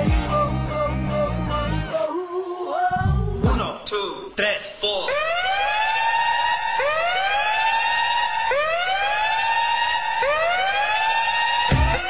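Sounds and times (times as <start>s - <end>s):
siren wail: 5.1s - 12.0s.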